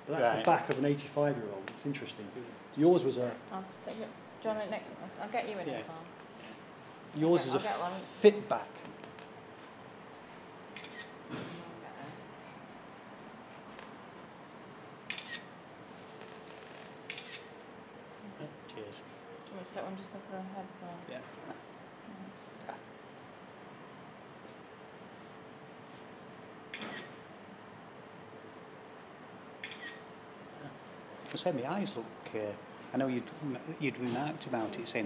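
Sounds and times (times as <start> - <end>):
faint steady hum: 0.0 - 35.0
phone camera shutter click: 10.8 - 11.2, 15.1 - 15.5, 26.7 - 27.2, 29.6 - 30.1.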